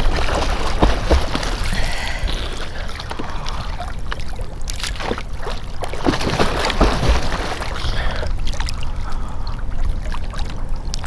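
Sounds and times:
water splashing from swimming: 0.0 - 11.0.

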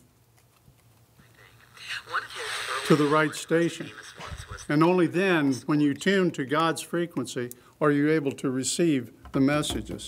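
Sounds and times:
radio static hiss: 1.2 - 5.6
snatches of broadcast sound: 1.2 - 5.7
radio switch and tuning: 1.3 - 5.0.

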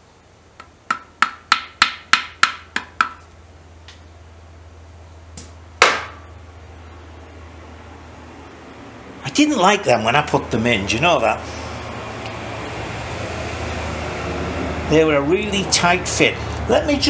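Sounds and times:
hand tool tapping metal: 0.6 - 3.3
louder knock with ring: 5.8 - 6.2.

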